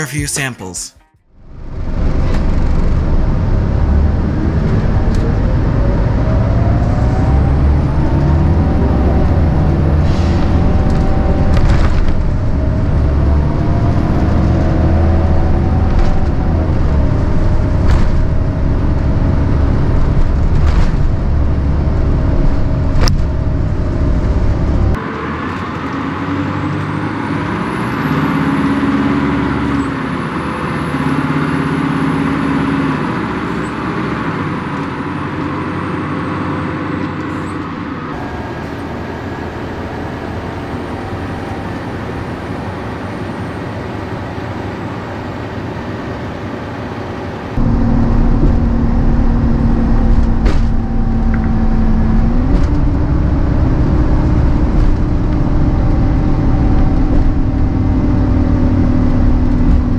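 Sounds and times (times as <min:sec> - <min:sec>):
bus diesel engine: 0:00.0 - 0:59.9.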